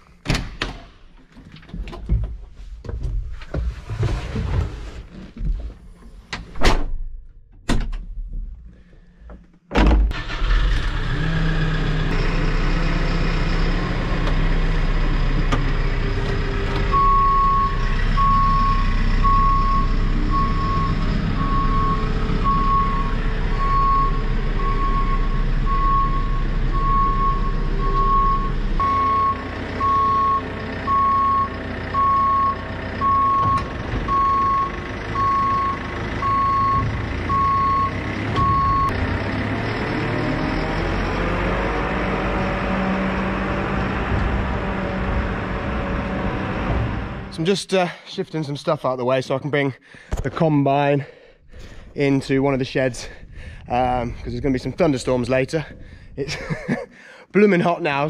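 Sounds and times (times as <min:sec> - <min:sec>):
diesel engine running: 0:10.2 - 0:47.5
reversing alarm beeping: 0:16.9 - 0:39.0.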